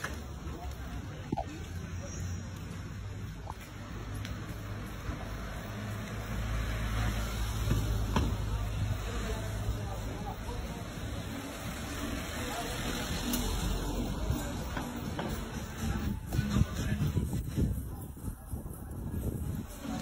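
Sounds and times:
indistinct voices of passers-by: 0:00.0 - 0:20.0
low rumble of traffic: 0:00.0 - 0:20.0.

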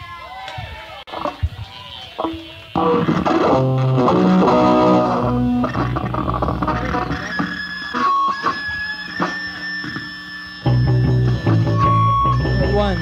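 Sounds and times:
bass guitar notes: 0:02.2 - 0:13.0
electric guitar notes: 0:02.2 - 0:13.0
steady high tone: 0:02.8 - 0:13.0.

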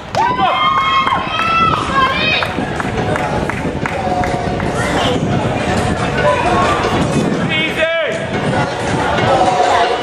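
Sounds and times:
people shouting and cheering: 0:00.0 - 0:10.0
steady outdoor noise: 0:00.0 - 0:10.0.

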